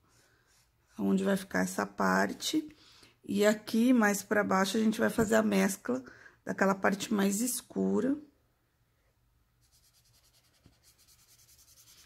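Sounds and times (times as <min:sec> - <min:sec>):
marker rubbing on paper: 0:09.6 - 0:12.0.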